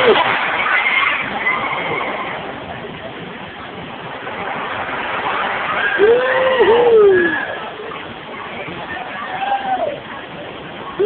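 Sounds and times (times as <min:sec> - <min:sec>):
steady background noise: 0:00.0 - 0:11.0
faint high-pitched screams: 0:05.7 - 0:10.2.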